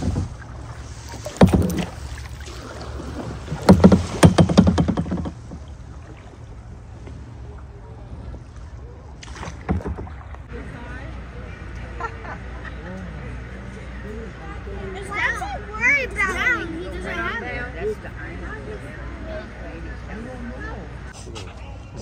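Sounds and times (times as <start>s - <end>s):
paddle splashing in water: 0.0s - 10.5s
low background rush: 0.0s - 22.0s.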